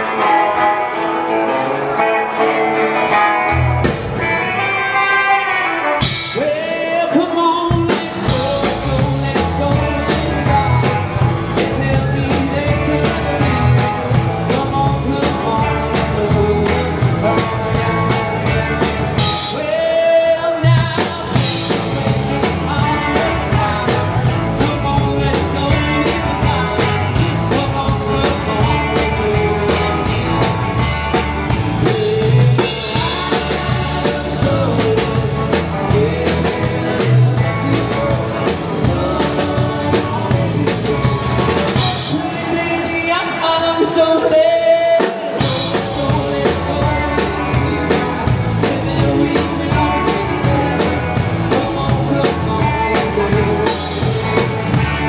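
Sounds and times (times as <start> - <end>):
electric guitar: 0.0 - 55.0
drum kit beat: 2.7 - 4.4, 7.7 - 55.0
person singing: 4.2 - 55.0.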